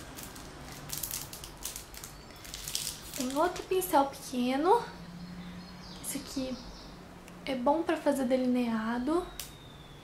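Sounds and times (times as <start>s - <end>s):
makeup brushes rustling and clicking: 0.0s - 3.8s.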